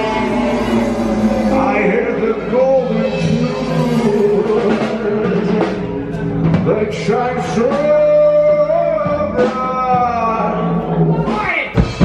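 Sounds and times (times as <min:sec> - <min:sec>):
man singing a long note: 0:00.0 - 0:05.8
live band playing: 0:00.0 - 0:12.0.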